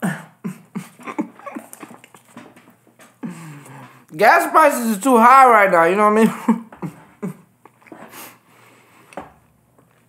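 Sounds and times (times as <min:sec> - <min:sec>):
man chuckling quietly: 0:00.0 - 0:02.4.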